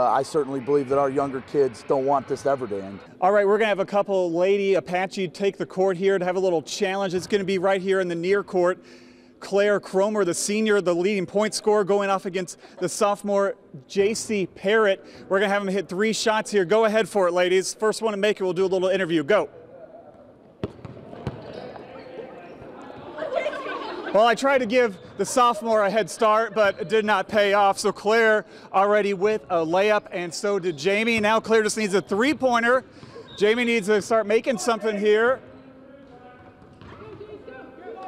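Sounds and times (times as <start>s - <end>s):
basketball bouncing on hardwood floor: 20.6s - 21.5s.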